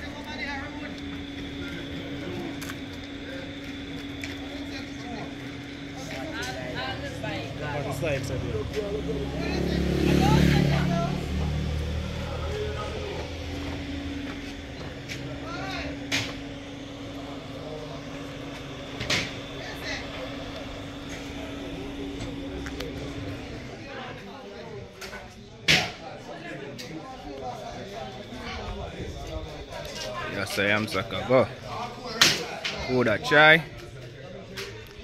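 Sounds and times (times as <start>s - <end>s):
faint background voices: 0.0s - 35.0s
steady hum: 0.0s - 35.0s
low rumble: 8.4s - 24.3s.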